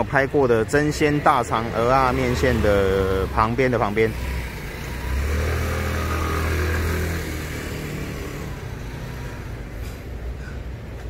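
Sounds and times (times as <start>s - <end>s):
traffic noise: 0.0s - 11.0s
vehicle engine passing: 0.4s - 10.3s.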